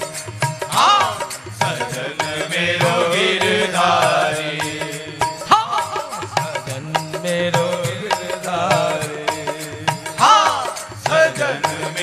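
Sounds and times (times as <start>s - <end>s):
devotional song singing: 0.0s - 12.0s
steady drum beat: 0.0s - 12.0s.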